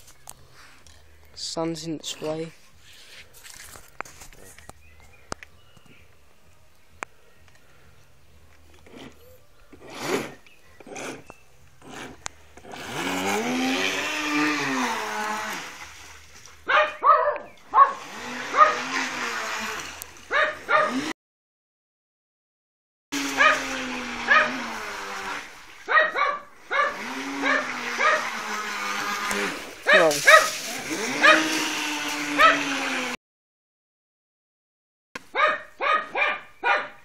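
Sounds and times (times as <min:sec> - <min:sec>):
dog whining and yelping: 0:25.9 - 0:28.3.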